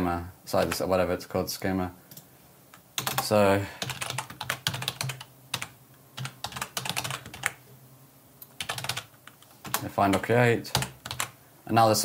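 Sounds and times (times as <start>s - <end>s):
computer keyboard typing: 3.0s - 7.6s, 8.6s - 11.4s.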